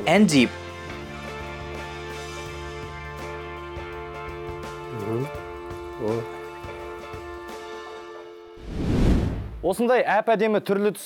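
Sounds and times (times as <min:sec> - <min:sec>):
background music sustained tones: 0:00.0 - 0:08.6.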